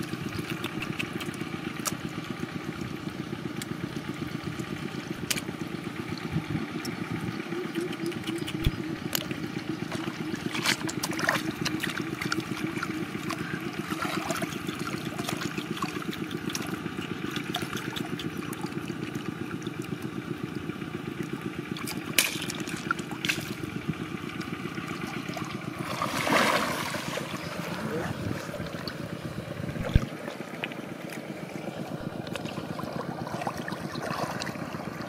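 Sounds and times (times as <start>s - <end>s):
low pulsing motor drone: 0.0s - 35.0s
river water splashing: 4.1s - 35.0s.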